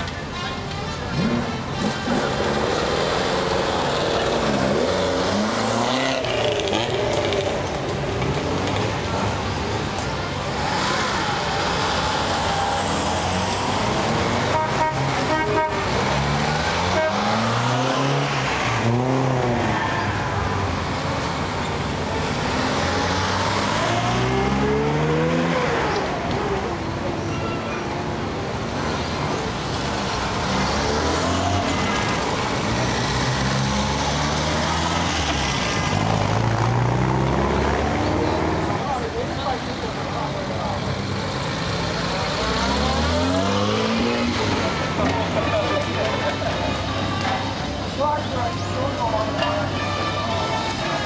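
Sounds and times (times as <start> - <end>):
sports car engines accelerating: 1.1 - 15.2, 15.9 - 27.2, 28.4 - 45.4.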